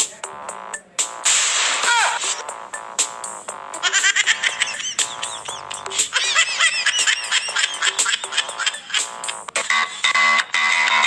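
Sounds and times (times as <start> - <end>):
clicking beat: 0.0 - 9.6.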